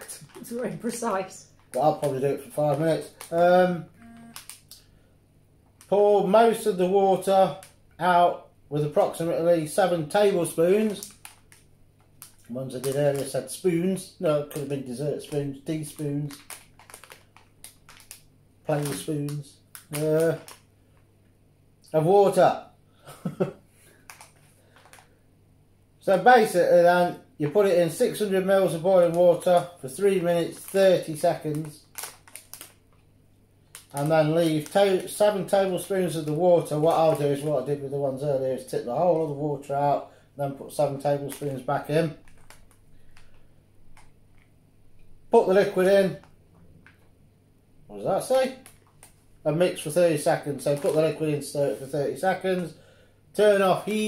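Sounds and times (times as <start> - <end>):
plastic packet crinkling: 0.0 - 3.6, 4.3 - 4.9, 10.2 - 13.6, 14.4 - 20.7, 23.9 - 25.2, 28.0 - 37.6, 41.1 - 44.5, 48.2 - 51.5
person speaking: 0.0 - 4.8, 5.8 - 11.3, 12.3 - 16.5, 18.6 - 20.6, 26.0 - 31.9, 33.8 - 42.5, 45.3 - 46.3, 47.9 - 48.7, 49.4 - 52.8, 53.4 - 54.0.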